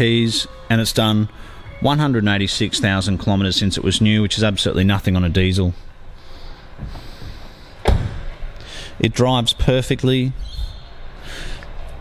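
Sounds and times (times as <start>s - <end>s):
car door shutting thud: 7.8s - 8.3s.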